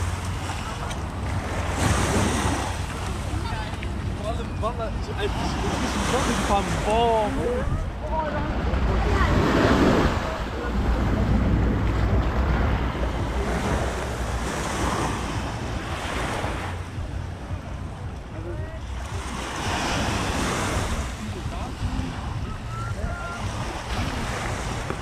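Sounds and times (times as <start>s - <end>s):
waves breaking on sand: 0.0s - 25.0s
wind buffeting microphone: 0.0s - 25.0s.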